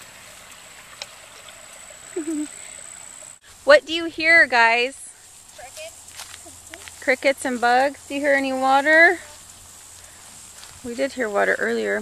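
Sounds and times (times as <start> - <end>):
insects chirring chorus: 0.0 - 12.0.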